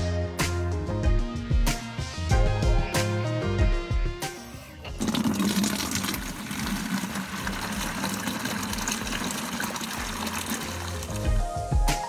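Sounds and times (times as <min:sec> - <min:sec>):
water filling plastic watering can: 0:04.8 - 0:11.4.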